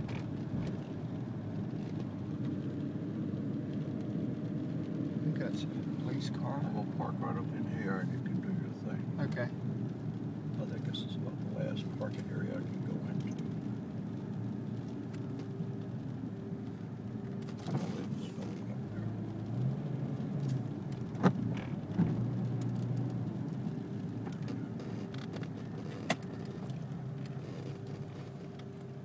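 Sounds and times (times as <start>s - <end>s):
car engine and road hum: 0.0s - 29.0s.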